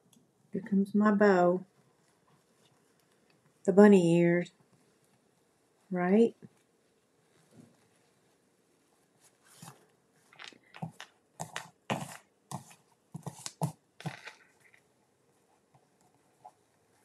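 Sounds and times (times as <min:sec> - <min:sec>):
ribbon and paper rustling: 0:09.1 - 0:14.8.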